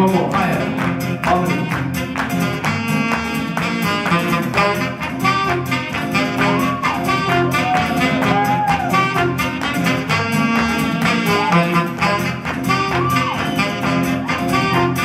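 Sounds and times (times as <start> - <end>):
live band playing: 0.0 - 15.0
saxophone solo: 1.4 - 15.0.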